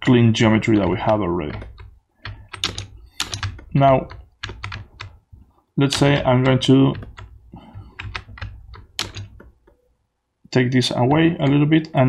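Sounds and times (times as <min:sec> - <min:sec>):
computer keyboard keys clicking: 0:00.6 - 0:05.2, 0:05.9 - 0:09.8.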